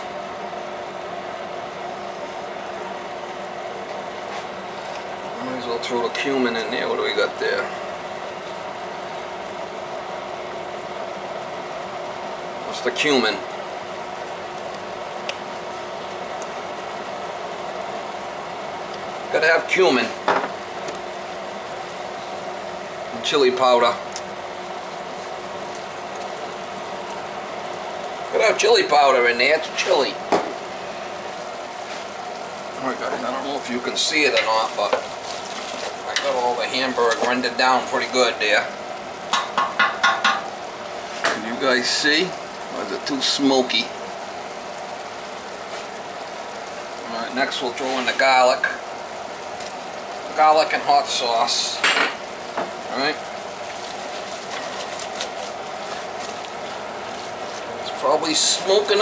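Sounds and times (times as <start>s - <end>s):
meat sizzling in a pot: 0.0s - 59.0s.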